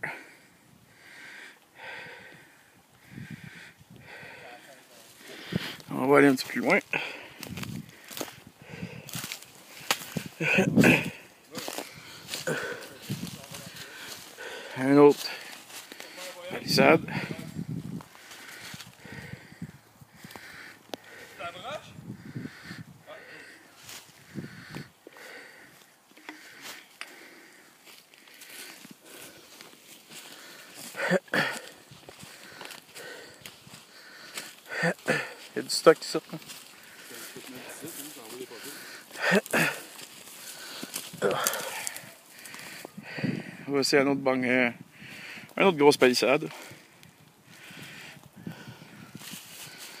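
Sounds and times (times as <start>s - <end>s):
footsteps on dry leaves and twigs: 4.0s - 21.4s, 22.5s - 43.6s, 45.0s - 50.0s.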